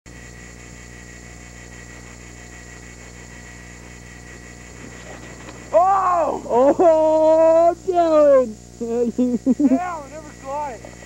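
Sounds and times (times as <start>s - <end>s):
camcorder hiss and hum: 0.1s - 11.0s
person shouting loudly: 5.7s - 8.4s.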